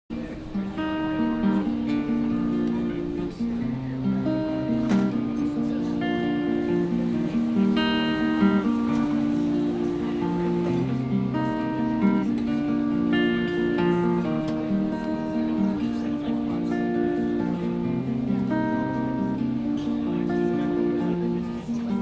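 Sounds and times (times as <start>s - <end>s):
acoustic guitar picking: 0.1s - 22.0s.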